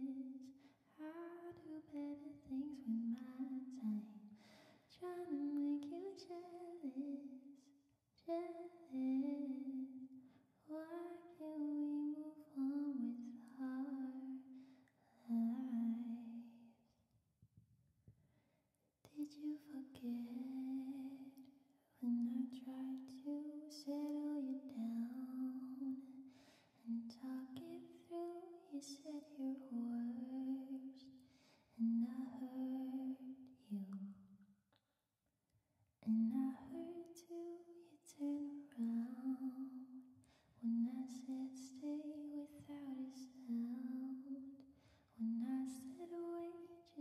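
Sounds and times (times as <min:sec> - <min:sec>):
woman singing unaccompanied: 0:00.0 - 0:04.2, 0:04.9 - 0:09.9, 0:10.7 - 0:14.5, 0:19.1 - 0:21.4, 0:22.0 - 0:26.2, 0:26.9 - 0:31.0, 0:31.8 - 0:34.1, 0:36.0 - 0:40.0, 0:40.6 - 0:44.6, 0:45.2 - 0:47.0.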